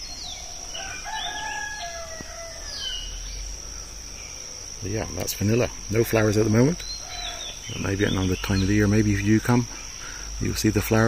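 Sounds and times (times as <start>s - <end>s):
bird chirp: 0.0s - 11.0s
high-pitched insect drone: 0.0s - 11.0s
rooster crowing: 0.5s - 3.2s, 7.0s - 7.6s.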